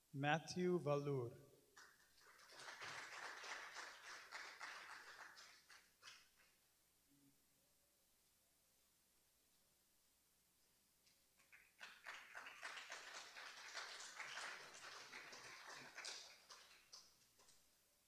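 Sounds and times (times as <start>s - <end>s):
audience applause: 1.9s - 6.2s, 11.4s - 17.0s.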